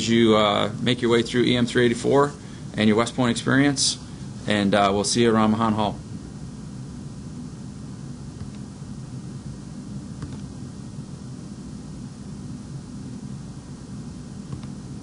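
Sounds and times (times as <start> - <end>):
low background hum: 0.0 - 15.0
computer mouse clicks: 10.2 - 10.5, 14.5 - 14.8.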